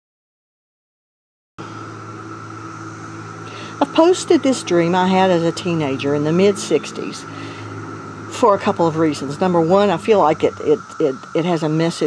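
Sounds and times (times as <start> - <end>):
cicadas droning: 1.6 - 12.0
low steady hum: 1.6 - 12.0
person speaking: 3.5 - 7.7, 8.3 - 12.0.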